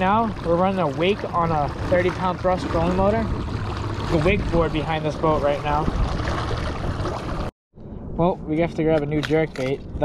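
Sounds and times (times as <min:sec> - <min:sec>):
water rushing behind boat motor: 0:00.0 - 0:07.5.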